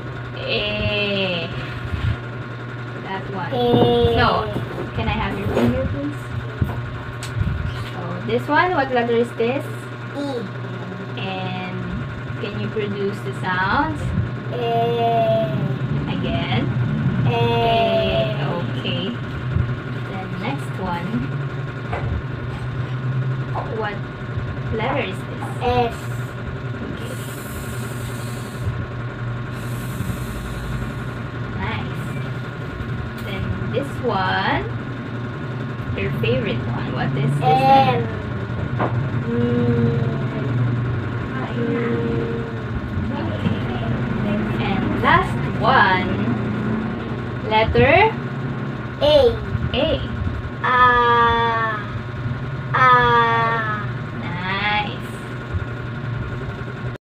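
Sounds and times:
steady low hum: 0.0 - 57.0
woman's voice: 0.4 - 1.9, 3.0 - 6.4, 7.9 - 10.0, 11.0 - 14.2, 15.9 - 16.8, 17.7 - 19.3, 20.0 - 21.4, 23.6 - 24.0, 24.7 - 25.8, 31.6 - 32.3, 33.2 - 34.8, 35.9 - 38.1, 41.3 - 46.5, 47.4 - 48.2, 49.6 - 51.5, 54.2 - 55.3.

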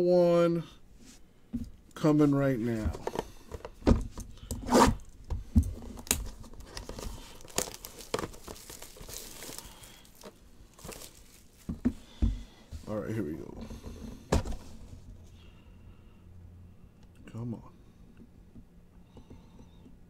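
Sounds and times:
plastic shrink wrap crinkling: 5.8 - 11.8.

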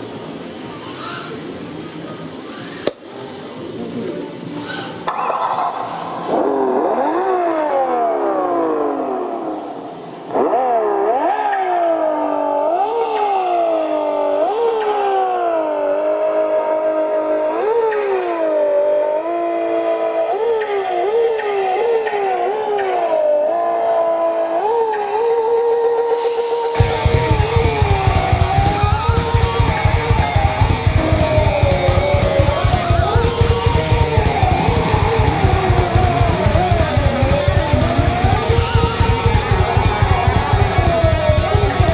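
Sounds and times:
car engine revving through gears: 6.3 - 10.6, 26.8 - 41.9.

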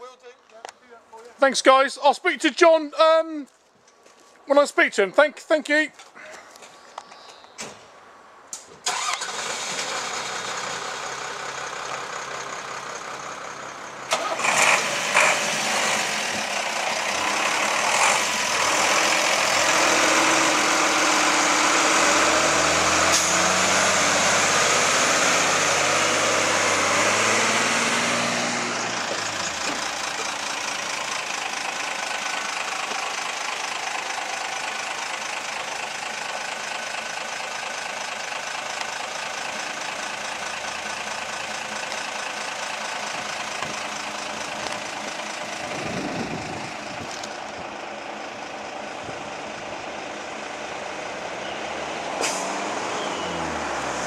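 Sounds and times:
diesel fire engines pulling away: 8.6 - 54.0
engine revving: 8.9 - 13.5, 14.1 - 35.0, 50.4 - 54.0.

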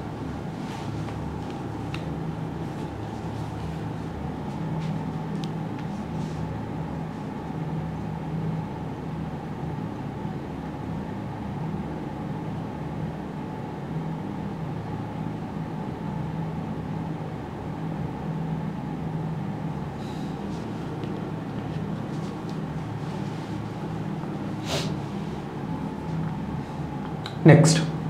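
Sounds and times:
low background hum: 0.0 - 28.0.

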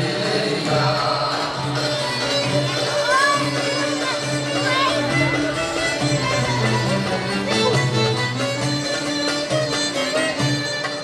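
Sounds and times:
bowed strings ensemble: 0.0 - 11.0.

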